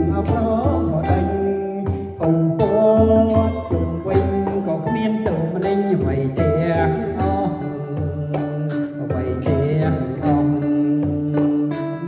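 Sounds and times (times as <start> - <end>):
instrumental accompaniment: 0.0 - 12.0
man singing into microphone: 0.0 - 12.0.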